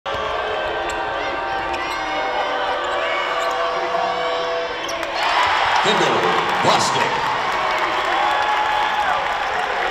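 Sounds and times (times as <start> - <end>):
crowd cheering loudly: 0.1 - 9.9
crowd noise: 0.1 - 9.9.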